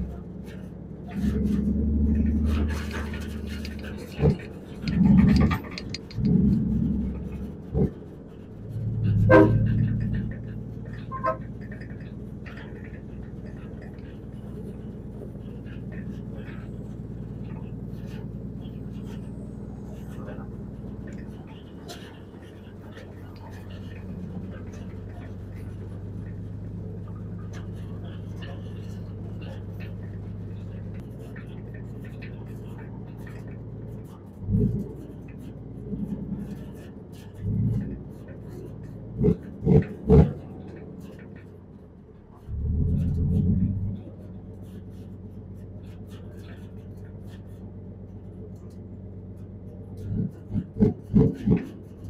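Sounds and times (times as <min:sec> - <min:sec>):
diesel engine running: 0:00.0 - 0:52.0.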